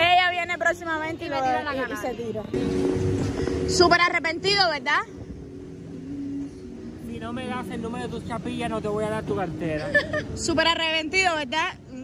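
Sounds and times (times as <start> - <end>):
fairground background hum: 0.0 - 12.0.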